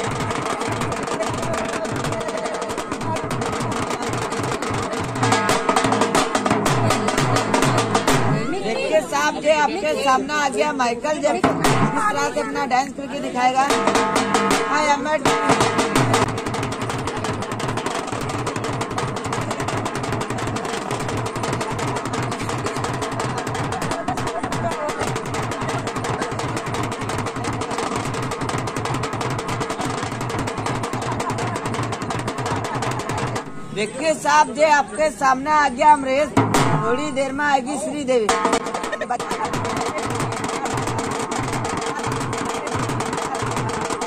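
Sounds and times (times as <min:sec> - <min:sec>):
drum roll beaten with stick: 0:00.0 - 0:08.9, 0:11.4 - 0:12.4, 0:13.6 - 0:33.5, 0:36.3 - 0:37.5, 0:38.2 - 0:44.0.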